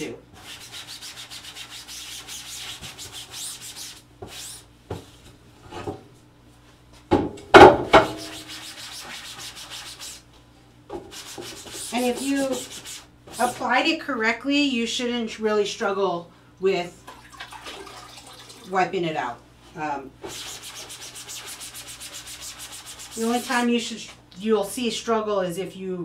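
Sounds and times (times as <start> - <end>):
sponge rubbing screen mesh: 0.4 - 4.6, 8.1 - 10.2, 11.1 - 13.7, 20.2 - 23.6.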